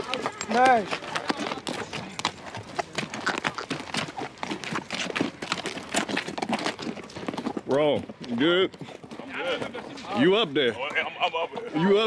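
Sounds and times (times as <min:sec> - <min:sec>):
hooves on stony sand: 0:00.0 - 0:12.0.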